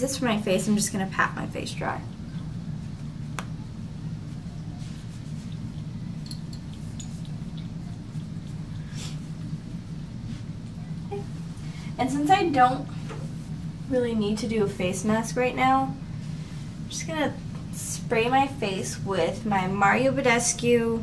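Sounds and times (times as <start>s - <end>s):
room hum: 0.0s - 21.0s.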